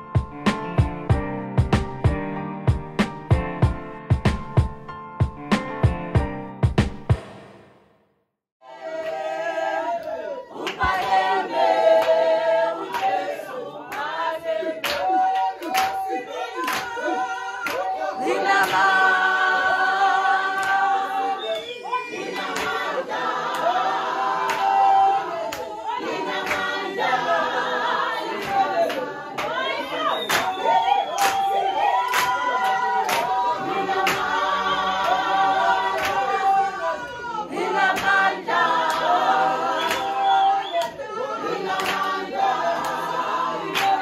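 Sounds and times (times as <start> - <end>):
sharp beat: 0.2 - 7.8
congregation singing a cappella: 8.6 - 44.0
hand clap: 10.0 - 11.3, 11.9 - 12.2, 12.9 - 13.2, 14.8 - 18.0, 18.6 - 19.0, 20.6 - 20.9, 22.4 - 23.7, 24.4 - 24.8, 26.4 - 26.8, 28.3 - 29.6, 30.2 - 34.4, 36.0 - 36.4, 37.9 - 39.2, 39.8 - 41.0, 41.8 - 42.2, 42.8 - 43.1, 43.7 - 44.0.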